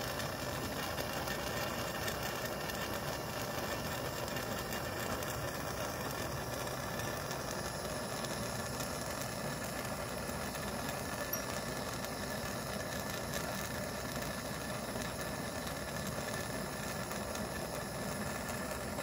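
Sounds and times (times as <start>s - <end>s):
gas torch burning: 0.0s - 19.0s.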